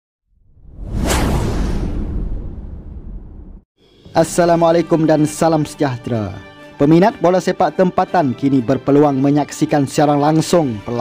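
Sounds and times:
deep rumble: 0.3s - 3.6s
whoosh: 0.3s - 3.6s
sharp hit: 0.7s - 3.6s.

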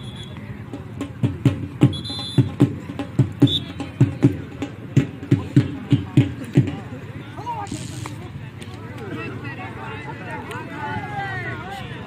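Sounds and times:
dhol drum beating: 0.0s - 7.1s.

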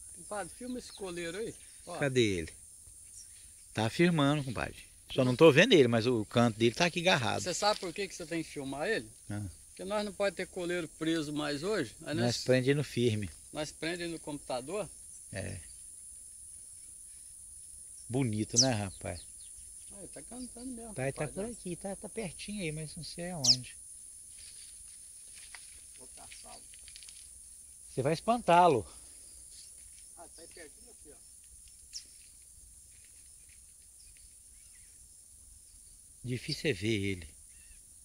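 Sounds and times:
bird chirping: 0.0s - 24.8s, 28.8s - 38.0s
high-pitched insect chorus: 0.0s - 38.0s.

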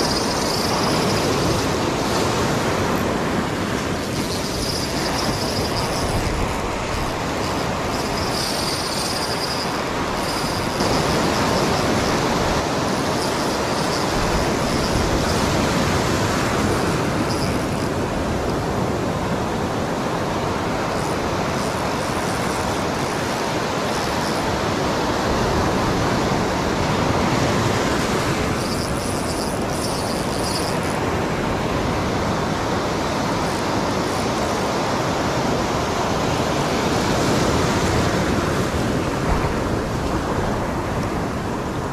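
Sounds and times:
ocean surf breaking on beach: 0.0s - 41.9s.

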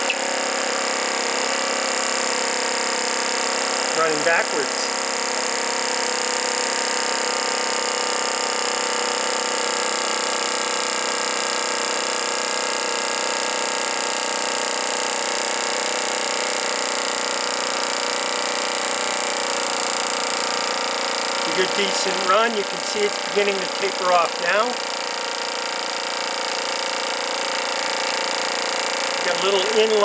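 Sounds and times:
model engine whirring: 0.0s - 30.0s.

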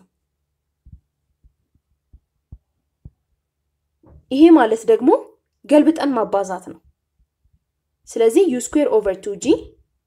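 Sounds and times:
faint low hum: 0.0s - 10.0s
stylus tapping on tablet screen: 0.8s - 3.4s.

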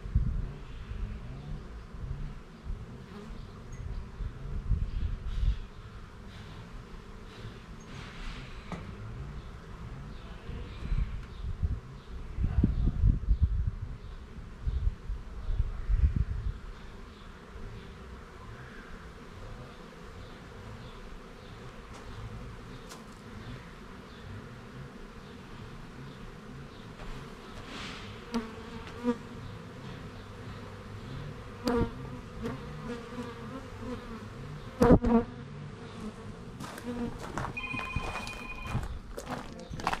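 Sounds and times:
honeybees buzzing: 0.3s - 11.4s, 16.0s - 40.0s.

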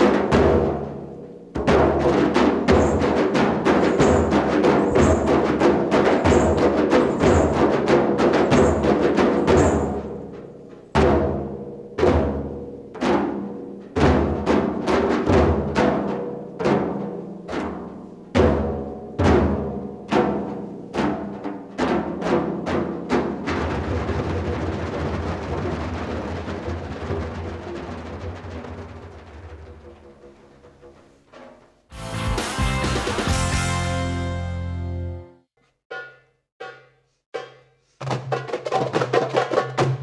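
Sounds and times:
frame drums struck: 0.0s - 34.3s.

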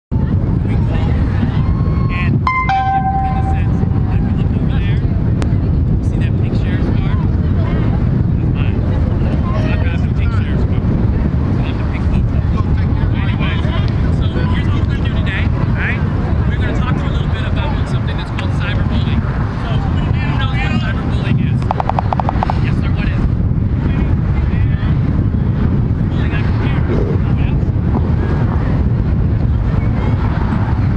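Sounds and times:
wind rumble on microphone: 0.1s - 30.9s
faint crowd chatter: 0.2s - 30.9s
pitched call or whistle: 2.5s - 3.8s, 21.7s - 22.6s.

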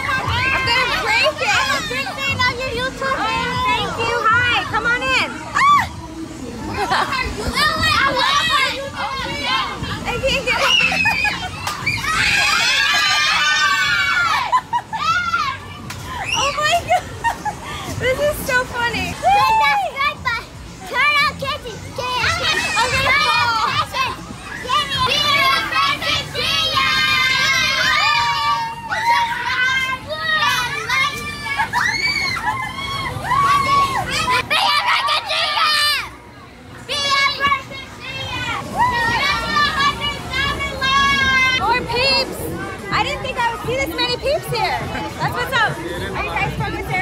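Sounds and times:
children shouting and squealing: 0.0s - 45.5s.

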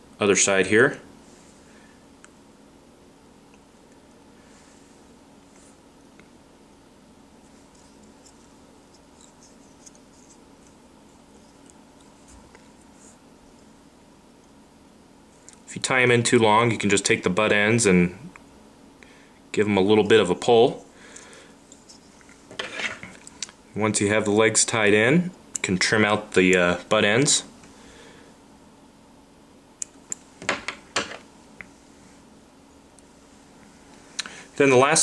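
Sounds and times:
steady low hum: 0.0s - 35.0s
scratchy ticks of thread tying: 7.4s - 13.7s.

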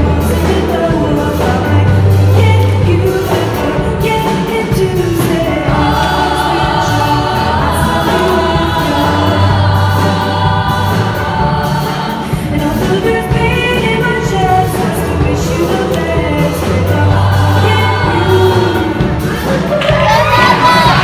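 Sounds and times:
choir of women singing: 0.0s - 21.0s.

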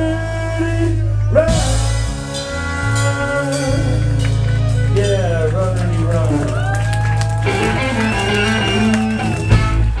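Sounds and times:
saxophone: 0.0s - 5.4s, 7.4s - 10.0s
drum kit: 1.4s - 10.0s
electric guitar: 5.7s - 10.0s.

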